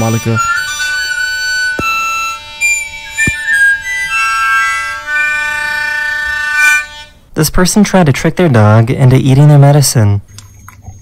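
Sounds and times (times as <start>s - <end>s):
harmonica bagpipe drone and tune: 0.0s - 7.3s.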